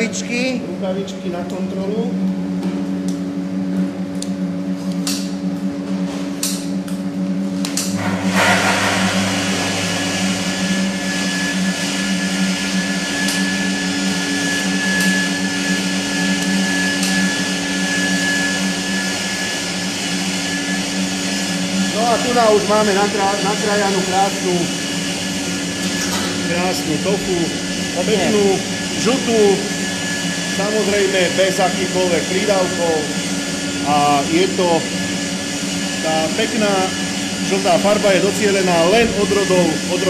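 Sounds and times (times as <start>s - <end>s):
high steady whine: 0.0s - 40.0s
machinery humming: 0.0s - 40.0s
rushing noise: 8.0s - 11.9s.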